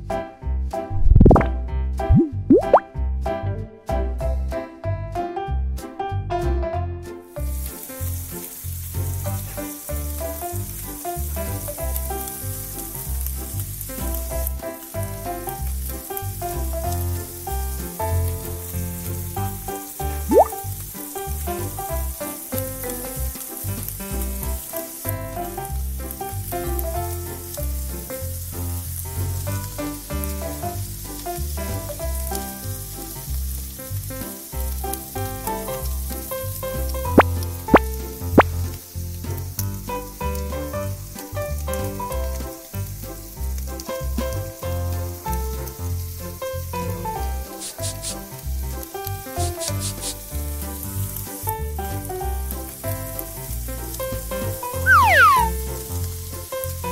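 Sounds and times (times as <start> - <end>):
batter sizzling in a frying pan: 7.2 - 56.9.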